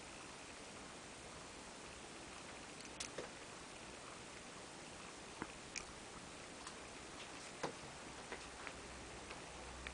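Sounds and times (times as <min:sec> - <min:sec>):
low hiss: 0:00.0 - 0:09.9.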